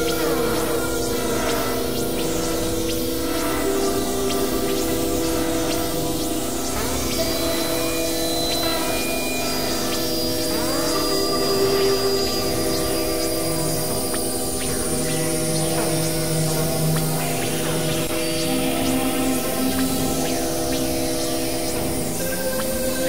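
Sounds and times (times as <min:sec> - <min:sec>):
experimental electronic drone music: 0:00.0 - 0:23.0.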